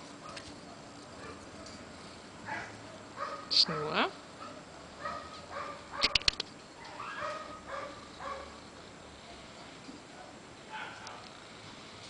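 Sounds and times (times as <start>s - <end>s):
sharp clicks: 6.0s - 6.5s.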